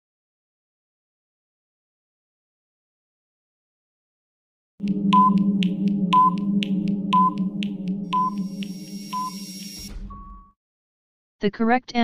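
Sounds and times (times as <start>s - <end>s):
low drone: 4.8s - 9.9s
timer ticking: 4.8s - 9.9s
high beeps: 4.8s - 10.5s
brief tone: 4.8s - 10.6s.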